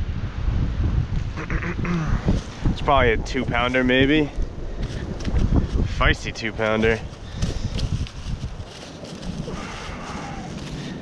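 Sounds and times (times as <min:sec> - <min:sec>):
fish flopping on dry grass: 0:07.1 - 0:11.0.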